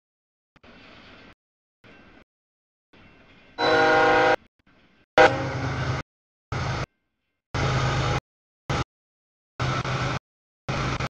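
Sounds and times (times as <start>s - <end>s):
train air horn blowing: 3.6s - 4.4s, 5.2s - 5.8s
diesel locomotive rumble: 5.2s - 6.0s.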